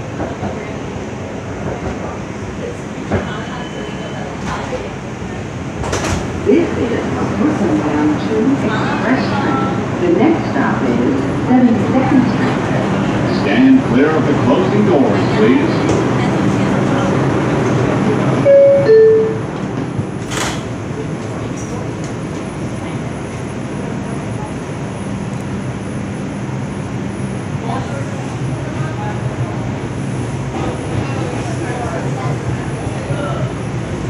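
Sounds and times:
subway car rumble: 0.0s - 34.0s
subway doors knocking shut: 2.9s - 6.8s, 15.5s - 23.5s
two-note descending door chime: 18.5s - 19.4s.

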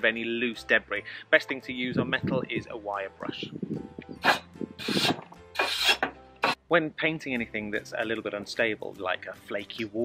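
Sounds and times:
wire brush scrubbing rusty metal: 4.3s - 6.6s.

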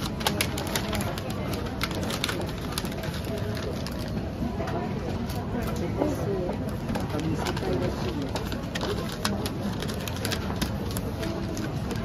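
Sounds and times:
wrapping paper crinkling: 0.0s - 4.3s, 7.0s - 12.0s.

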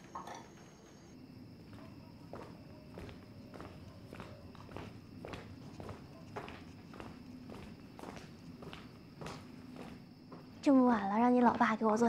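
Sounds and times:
heeled footsteps on pavement: 1.7s - 10.5s.

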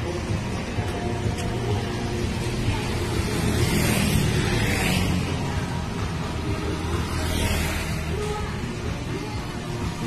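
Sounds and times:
motorbikes passing: 0.0s - 10.0s.

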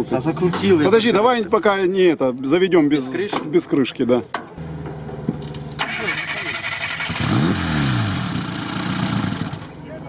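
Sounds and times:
car engine roaring and revving: 4.6s - 9.8s.

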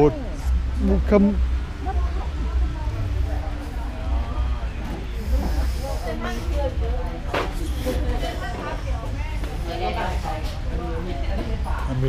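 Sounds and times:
indistinct voices talking: 0.0s - 12.0s
low rumble and hiss: 0.0s - 12.0s.

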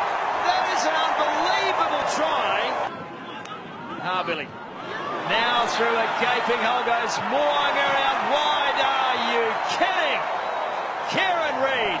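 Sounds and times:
stadium crowd noise: 0.0s - 12.0s
excited commentator's voice: 0.4s - 2.9s, 5.2s - 10.3s, 11.0s - 12.0s.

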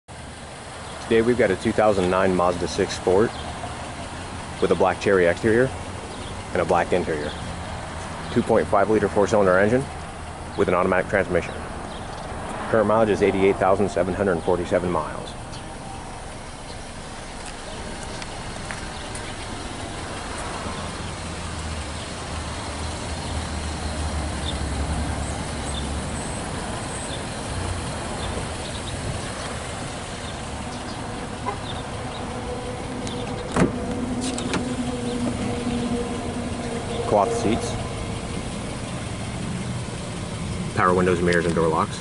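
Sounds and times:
car door opening click: 33.1s - 35.4s.

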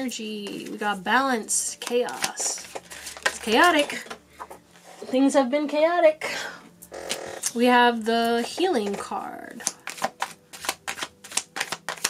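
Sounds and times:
cards being shuffled: 0.4s - 1.0s, 1.7s - 4.6s, 7.1s - 12.0s.

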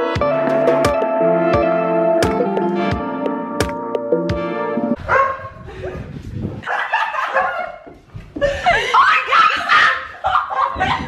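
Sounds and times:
guitar music: 0.0s - 5.0s
laughter: 5.7s - 11.0s.

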